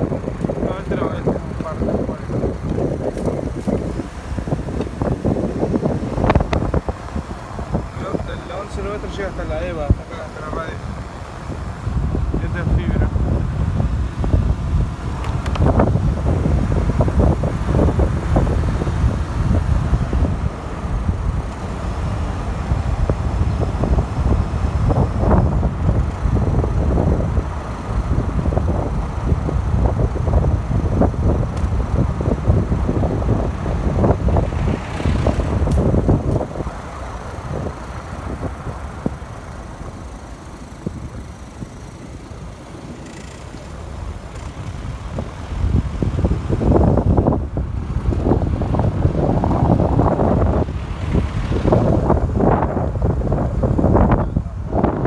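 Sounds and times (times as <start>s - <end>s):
wind buffeting microphone: 0.0s - 55.0s
car passing: 30.9s - 53.0s.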